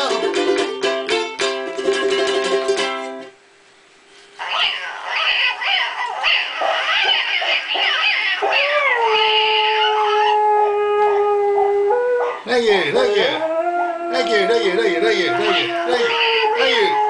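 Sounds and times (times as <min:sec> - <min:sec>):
dog howling: 0:04.4 - 0:17.0.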